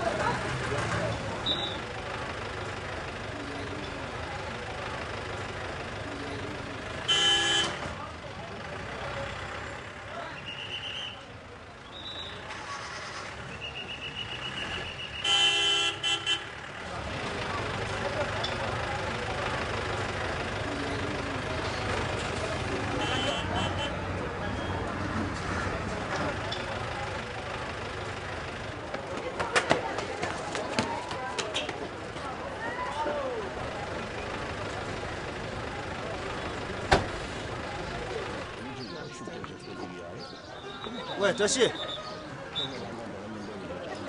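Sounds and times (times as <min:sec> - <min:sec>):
distant voices: 0:00.0 - 0:44.0
street traffic: 0:00.0 - 0:44.0
vehicle horn honking: 0:07.1 - 0:07.8, 0:14.0 - 0:16.6, 0:22.9 - 0:24.0.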